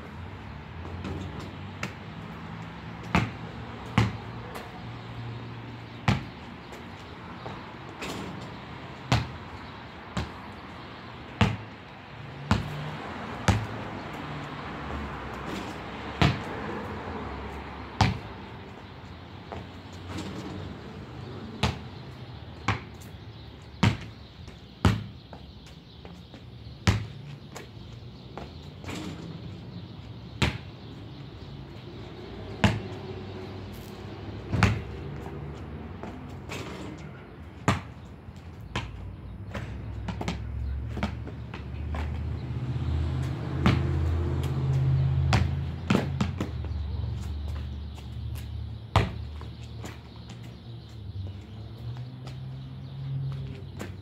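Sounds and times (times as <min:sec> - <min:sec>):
basketball bouncing on concrete: 0:00.8 - 0:05.0, 0:05.9 - 0:18.7, 0:19.4 - 0:25.7, 0:26.7 - 0:29.2, 0:30.2 - 0:31.3, 0:32.2 - 0:50.5.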